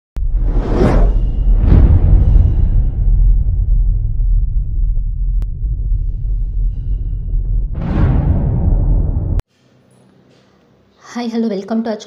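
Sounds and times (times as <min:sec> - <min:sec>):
deep rumble: 0:00.2 - 0:09.4
whooshes: 0:00.2 - 0:09.4.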